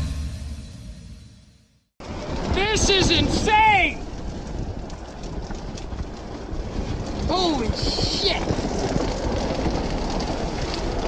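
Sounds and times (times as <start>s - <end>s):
wind buffeting microphone: 2.0s - 11.0s.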